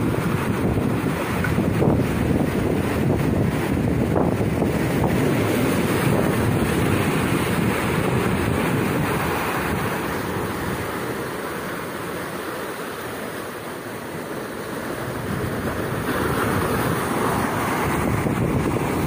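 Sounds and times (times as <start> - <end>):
wind on microphone: 0.0 - 11.4, 14.8 - 19.0
surf breaking over rocks: 0.0 - 19.0.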